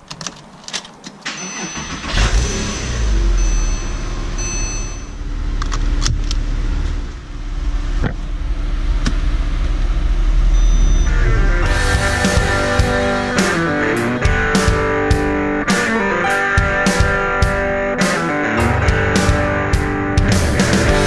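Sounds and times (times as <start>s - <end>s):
car engine starting and idling: 0.0s - 17.7s, 18.5s - 21.0s
thin chime tones: 1.3s - 2.1s, 2.7s - 5.2s.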